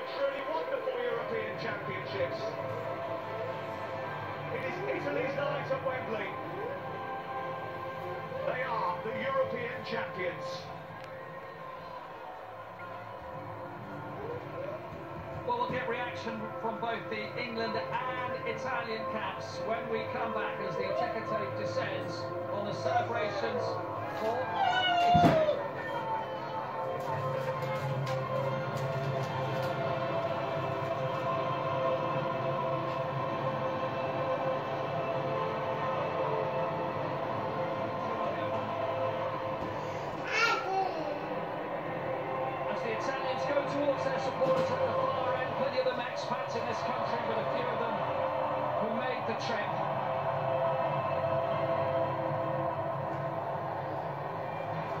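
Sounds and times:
stadium crowd din: 0.0 - 40.1, 41.3 - 55.0
music: 0.0 - 55.0.

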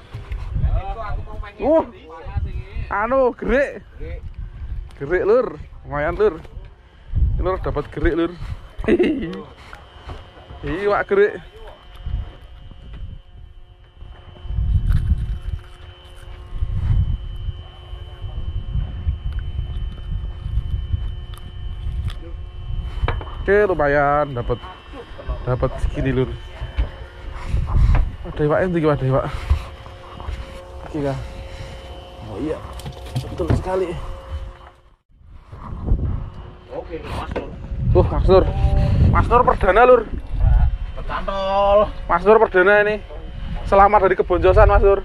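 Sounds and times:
faint steady hum: 0.0 - 45.0
wind buffeting microphone: 0.0 - 45.0.

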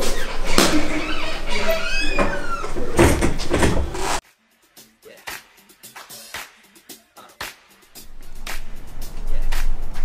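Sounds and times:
wooden door squeaking shut: 0.0 - 4.0.

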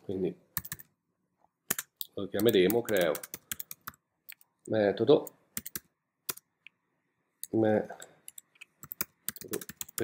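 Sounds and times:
computer keyboard keystrokes: 0.6 - 0.9, 1.7 - 4.4, 5.6 - 6.4, 8.3 - 10.0.

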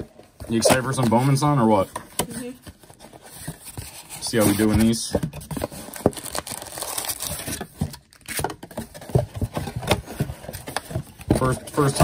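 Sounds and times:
rustles and scrapes of packs: 0.5 - 7.7.

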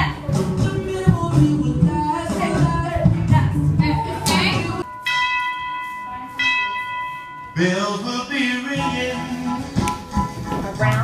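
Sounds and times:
bell-like chime strikes: 4.9 - 7.7.

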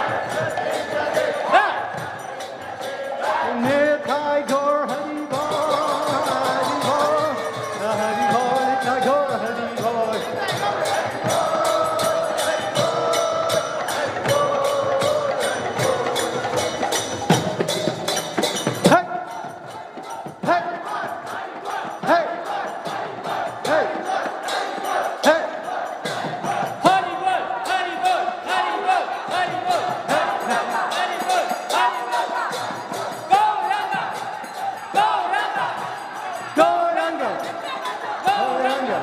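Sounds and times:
crowd chanting together: 0.0 - 39.0.

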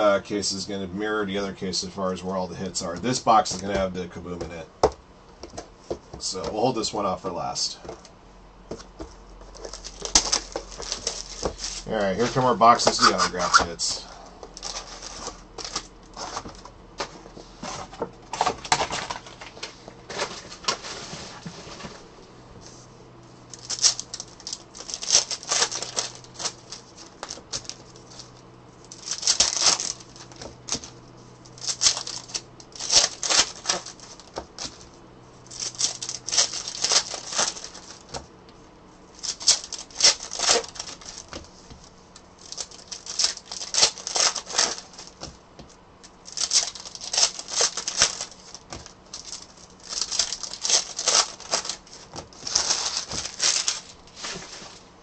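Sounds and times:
card pack wrappers crinkling: 2.6 - 4.6, 9.4 - 17.1, 23.5 - 38.2, 39.1 - 45.3, 46.0 - 54.8
cards being handled: 8.7 - 21.0, 23.5 - 38.3, 39.2 - 54.8.

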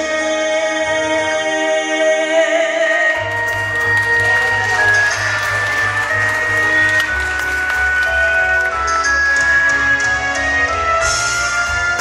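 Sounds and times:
sustained high melody: 3.4 - 10.6.

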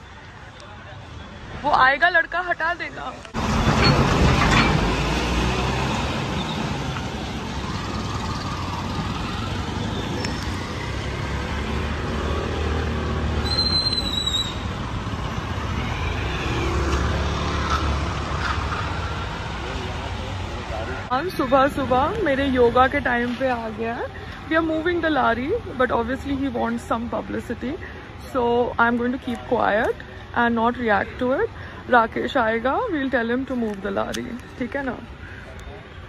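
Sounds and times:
street traffic: 0.0 - 36.0.

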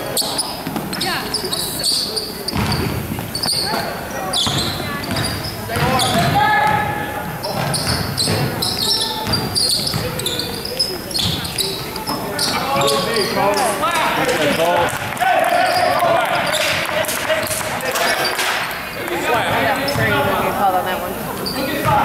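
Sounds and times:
basketball bouncing on wood floor: 2.5 - 3.8, 4.4 - 11.6
people shouting in hall: 15.1 - 17.3.

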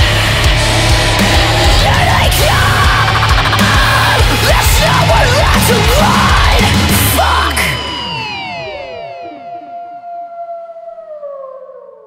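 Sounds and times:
held tone sliding down in pitch: 7.7 - 12.0.

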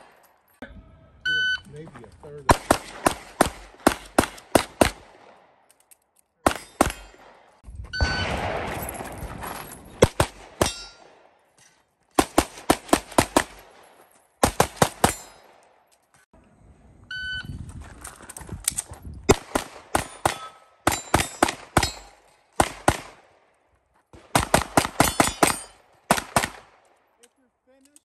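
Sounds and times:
pistol shots: 2.5 - 5.7, 6.4 - 11.4, 14.4 - 15.7, 19.3 - 23.4, 24.2 - 26.9.

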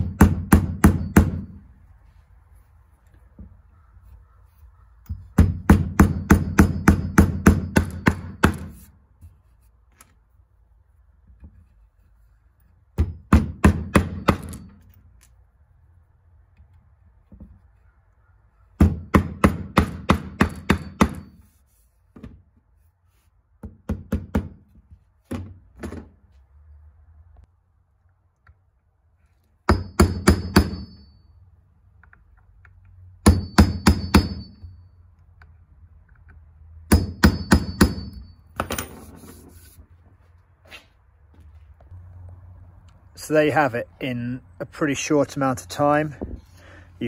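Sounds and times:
hammer driving nails into wood: 0.0 - 1.6, 5.1 - 8.9, 12.9 - 14.9, 18.8 - 21.4, 23.6 - 26.1, 29.6 - 30.9, 33.2 - 34.5, 36.9 - 39.0.

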